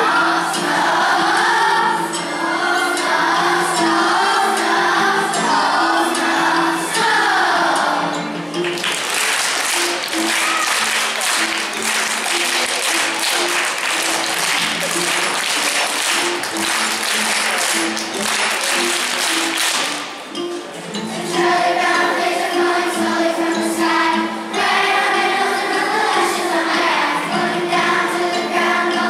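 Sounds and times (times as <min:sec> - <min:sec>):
children's choir singing: 0:00.0 - 0:29.0
applause and clapping: 0:08.6 - 0:20.4.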